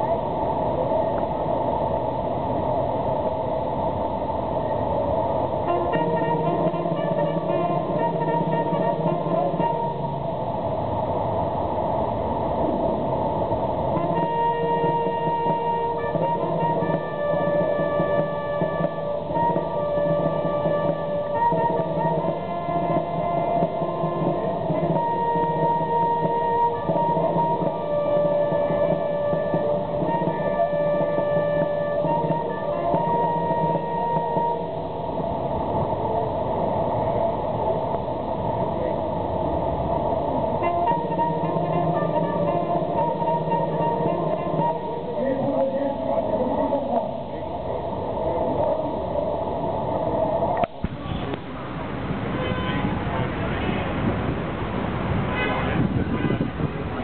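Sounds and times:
street noise: 0.0s - 57.0s
traffic noise: 0.0s - 57.0s
military band brass: 5.7s - 10.2s, 13.9s - 34.8s, 40.6s - 45.4s, 55.2s - 57.0s
murmur of voices: 14.0s - 34.8s, 35.5s - 52.1s.

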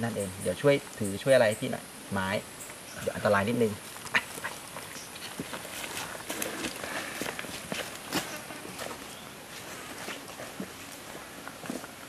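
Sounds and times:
dry leaves rustling underfoot: 3.9s - 12.0s
light footsteps: 3.9s - 12.0s.

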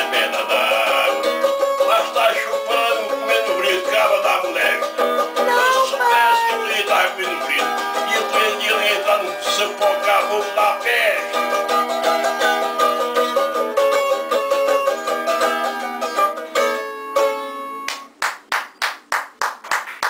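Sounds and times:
small guitar strummed briskly: 0.0s - 18.0s.

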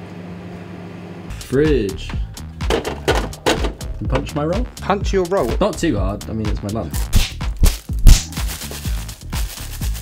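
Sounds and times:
background music with a beat: 1.3s - 10.0s
fist thumping bread roll: 7.2s - 8.4s
plastic bag crinkling: 7.7s - 10.0s.

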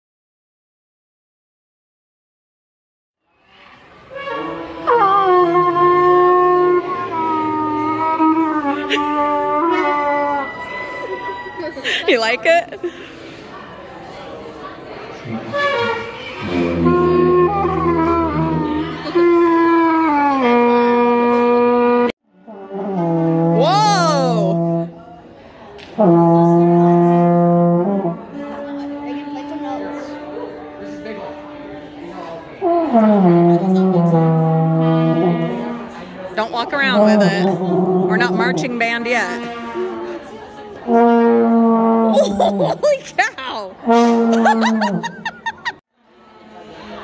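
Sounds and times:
trumpet held note: 40.9s - 42.1s.

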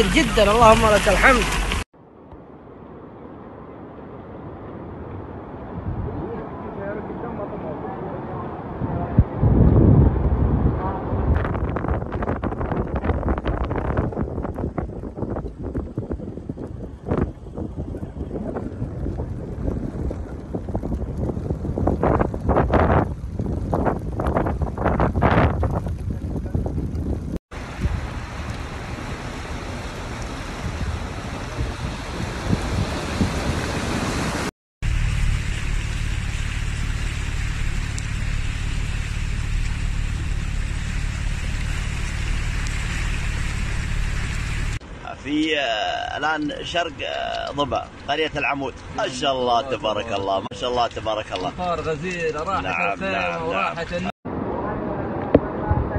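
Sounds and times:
floodwater rushing: 0.0s - 1.9s, 27.5s - 50.5s
water washing under car: 0.0s - 1.9s, 18.3s - 54.1s
hiss of wind and rain: 0.0s - 55.9s
wind buffeting microphone: 8.6s - 44.8s
car engine drone: 34.8s - 45.1s.

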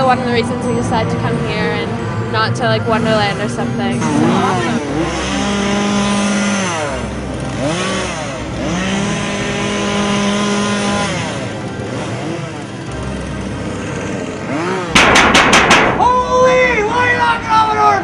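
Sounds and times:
chainsaw engine revving: 3.4s - 16.0s
sharp bangs: 14.9s - 16.6s.

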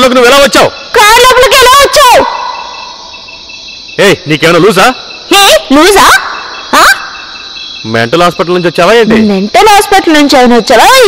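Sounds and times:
crickets chirping: 0.0s - 11.0s.

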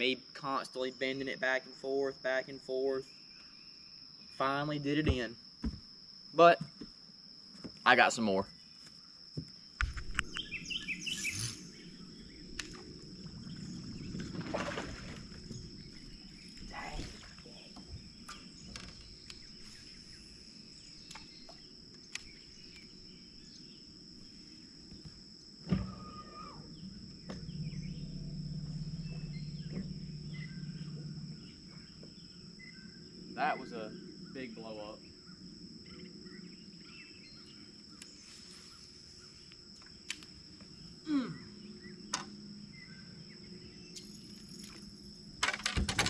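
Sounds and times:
insects droning: 0.0s - 46.0s
birds chirping: 7.9s - 45.4s
low steady hum: 10.1s - 37.8s
loud thump: 25.6s - 32.2s.

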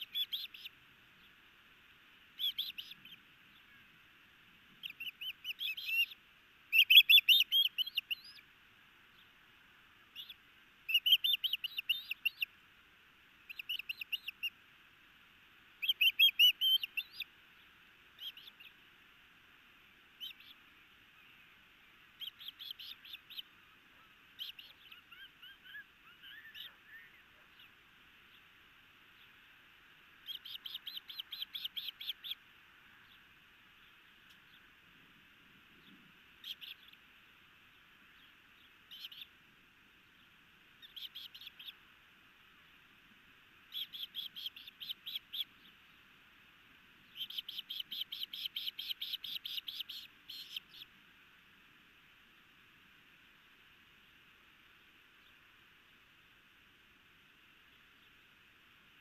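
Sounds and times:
young bird chirping rapidly: 0.0s - 0.7s, 2.4s - 3.7s, 4.8s - 8.4s, 10.1s - 12.5s, 13.5s - 14.5s, 15.8s - 17.3s, 18.2s - 18.7s, 20.2s - 20.6s, 22.2s - 23.6s, 24.4s - 28.4s, 30.2s - 32.4s, 36.4s - 37.0s, 38.9s - 39.3s, 40.8s - 41.8s, 43.7s - 45.7s, 47.0s - 50.9s.

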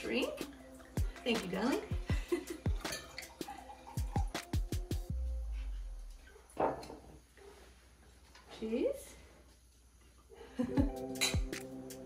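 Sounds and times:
soft background music: 0.0s - 6.6s, 10.6s - 12.0s.

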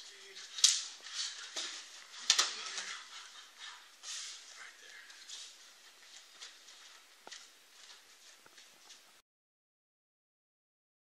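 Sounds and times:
clothing rustling on a mat: 0.1s - 9.2s.

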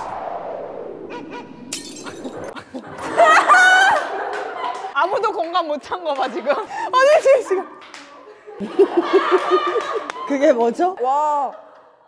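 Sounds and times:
glass shattering: 1.7s - 2.4s.

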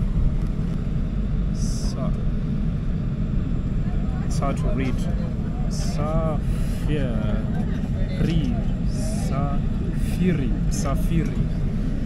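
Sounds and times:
airliner cabin low rumble: 0.0s - 12.0s
voices talking: 3.8s - 11.5s.

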